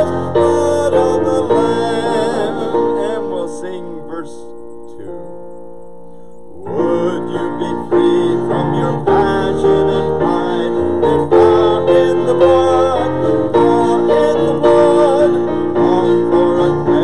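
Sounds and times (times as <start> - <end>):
piano music: 0.0 - 17.0.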